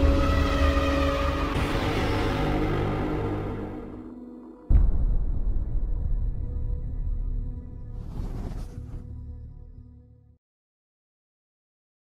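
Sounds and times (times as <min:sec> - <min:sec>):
deep rumble: 0:03.7 - 0:10.0.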